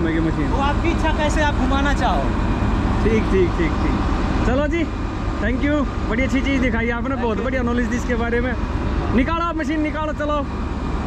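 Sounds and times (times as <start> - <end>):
diesel engine idling: 0.0 - 11.0
man's voice: 3.0 - 10.5.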